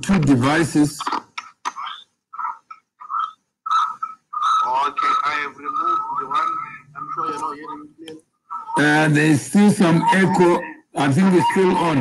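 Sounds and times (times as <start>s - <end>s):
clipped voice fragments: 0.0s - 12.0s
echoing speech: 4.6s - 12.0s.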